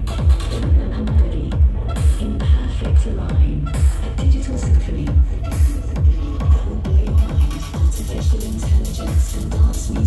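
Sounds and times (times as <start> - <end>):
deep kick drum thumps: 0.0 - 10.0
loud electronic dance music: 0.0 - 10.0.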